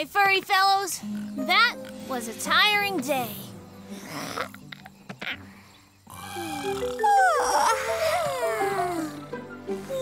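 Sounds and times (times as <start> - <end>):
background music with held notes: 1.0 - 10.0.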